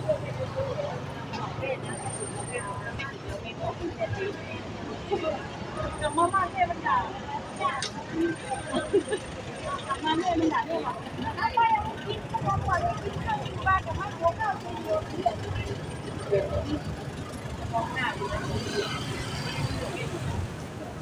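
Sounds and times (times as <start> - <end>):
people's voices: 0.0 - 21.0.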